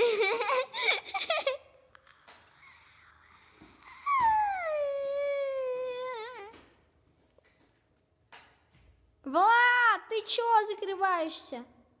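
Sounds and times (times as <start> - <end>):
person wailing: 3.9 - 6.6.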